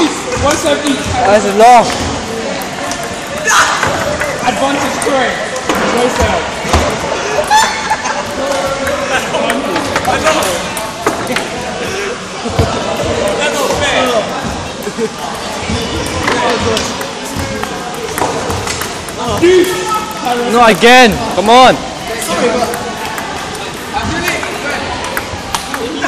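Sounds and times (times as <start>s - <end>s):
chatter of many voices: 0.0s - 26.0s.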